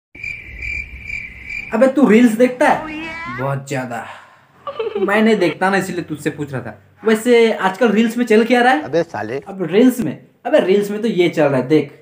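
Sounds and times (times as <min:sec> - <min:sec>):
cricket chirping: 0:00.2 - 0:03.0.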